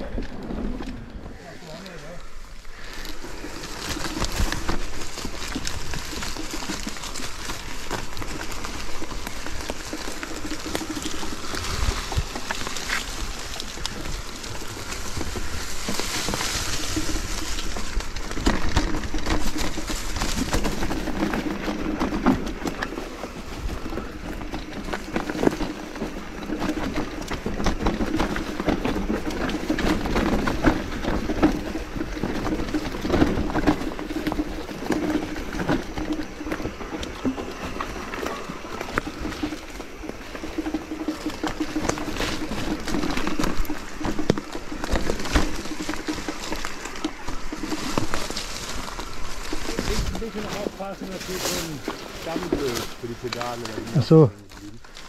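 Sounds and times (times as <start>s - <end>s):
bike rattling over bumps: 0.0s - 55.0s
bike tyres crunching over leaves: 0.0s - 55.0s.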